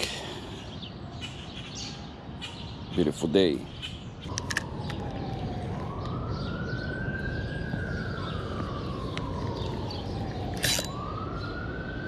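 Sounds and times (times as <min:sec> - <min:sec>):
siren wailing: 0:04.2 - 0:12.0.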